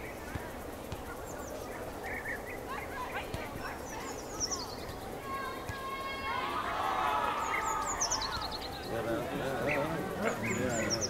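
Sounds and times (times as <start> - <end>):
birds chirping: 0.0 - 11.0
steady outdoor background: 0.0 - 11.0.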